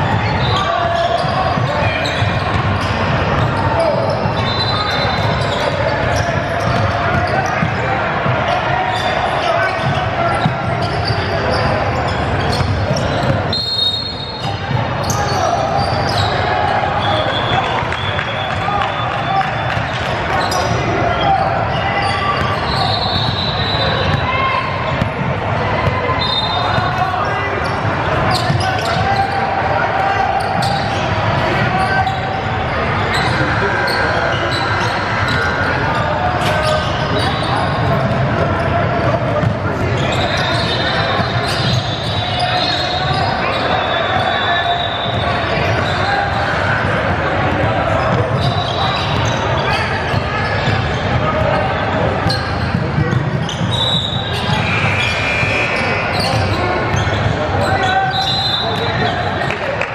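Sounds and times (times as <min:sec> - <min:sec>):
chatter of players and spectators: 0:00.0 - 0:59.9.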